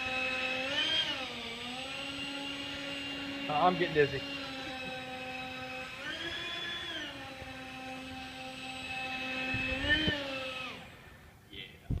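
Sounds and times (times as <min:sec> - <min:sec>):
model hovercraft motor whining: 0:00.0 - 0:11.3.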